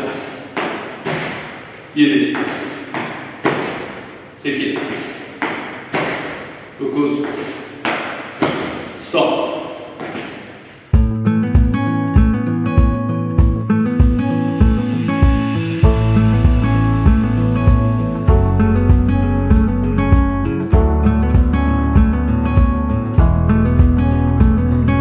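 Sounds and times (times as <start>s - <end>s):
feet thumping on gym floor: 0.0s - 9.2s, 9.8s - 24.6s
background music with bass beat: 11.0s - 25.0s.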